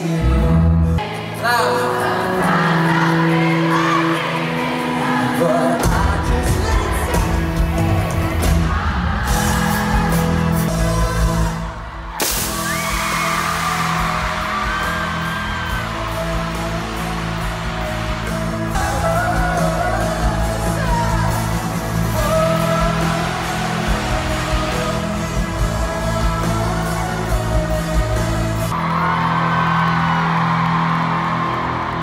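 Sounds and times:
bass guitar: 0:00.0 - 0:01.2, 0:05.8 - 0:32.0
man singing lead: 0:00.0 - 0:11.9, 0:17.8 - 0:28.7
live pop-rock band music: 0:00.0 - 0:29.1.

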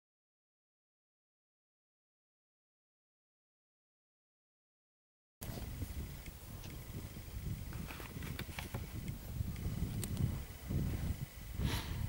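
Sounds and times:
wind rumbling on microphone: 0:05.4 - 0:12.0
faint clicks: 0:08.1 - 0:10.3.

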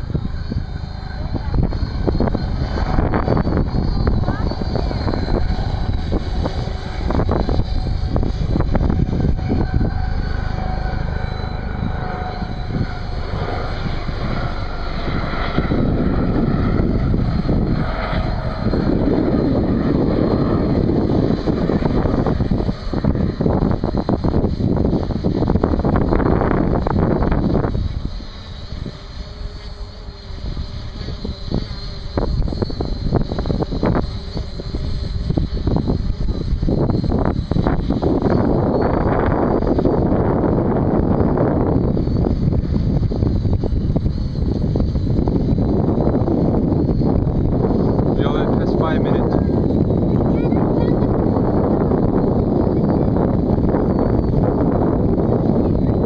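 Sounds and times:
drone propellers humming: 0:00.0 - 0:56.0
wind buffeting microphone: 0:00.0 - 0:56.0.

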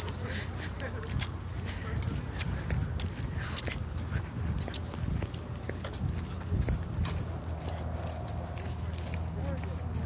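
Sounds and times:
footsteps walking: 0:00.0 - 0:10.0
steady low rumble: 0:00.0 - 0:10.0.

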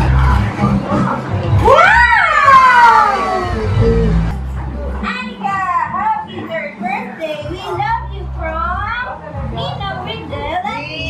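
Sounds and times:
background music with low bass: 0:00.0 - 0:06.8
child talking and exclaiming: 0:05.0 - 0:06.2.

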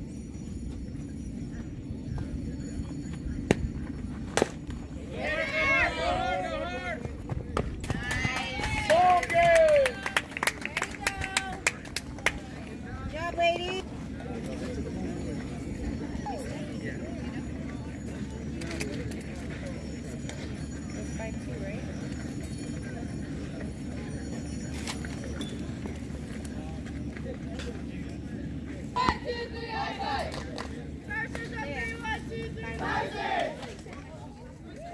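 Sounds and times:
steady low rumble: 0:00.0 - 0:09.6.

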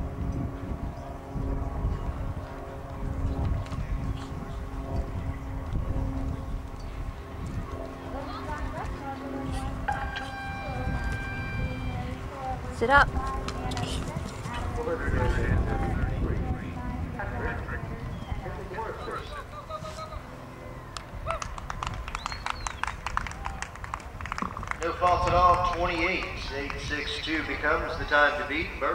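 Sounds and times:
wind noise on microphone: 0:00.0 - 0:20.2, 0:21.0 - 0:28.5
quick claps: 0:20.9 - 0:26.8.

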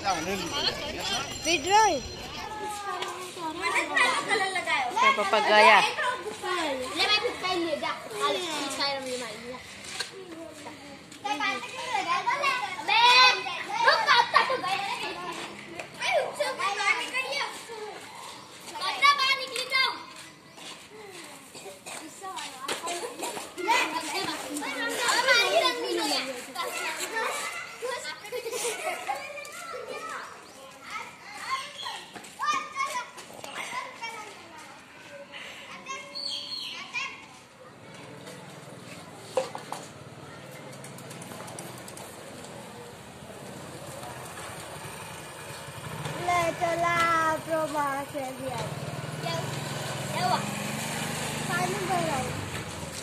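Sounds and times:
children calling and chattering: 0:00.0 - 0:53.0
children shouting shrilly: 0:49.1 - 0:52.4.

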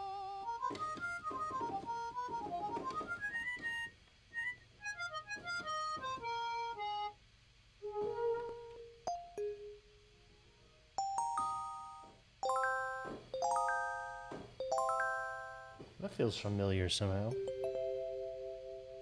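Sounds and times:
synthesizer harmonica melody: 0:00.0 - 0:07.2, 0:11.0 - 0:15.8.

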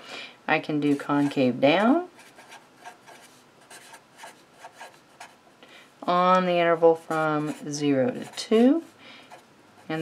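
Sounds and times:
marker writing on paper: 0:02.2 - 0:05.4.

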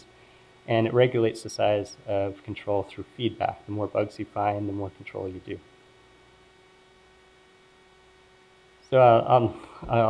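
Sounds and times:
faint electrical hum: 0:00.0 - 0:10.0
man talking: 0:00.7 - 0:05.6, 0:08.9 - 0:10.0.

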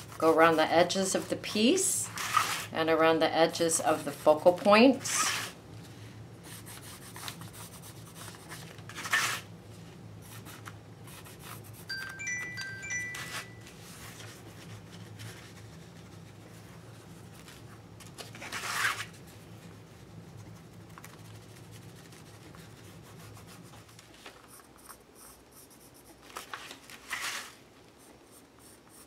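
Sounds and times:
pencil rubbing and scratching: 0:00.0 - 0:01.3, 0:02.1 - 0:02.7, 0:03.8 - 0:05.6, 0:06.4 - 0:09.4, 0:10.2 - 0:11.9, 0:13.8 - 0:17.5, 0:18.4 - 0:26.4, 0:27.1 - 0:29.0
bright chime-like notes: 0:11.9 - 0:13.7.

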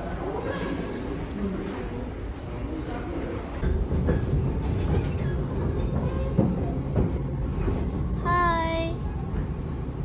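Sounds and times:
subway train rumble: 0:00.0 - 0:10.0.

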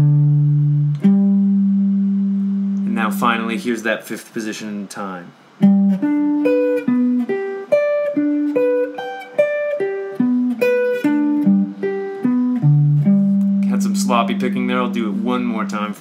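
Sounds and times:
clean electric guitar arpeggio: 0:05.6 - 0:15.4.

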